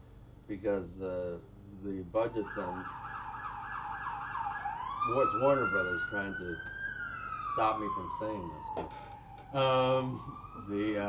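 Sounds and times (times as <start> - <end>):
emergency vehicle siren: 2.3 - 11.0.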